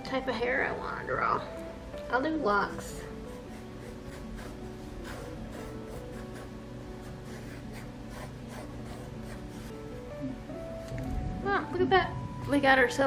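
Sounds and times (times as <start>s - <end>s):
background music: 0.0s - 13.0s
pencil scratching on paper: 2.8s - 9.8s.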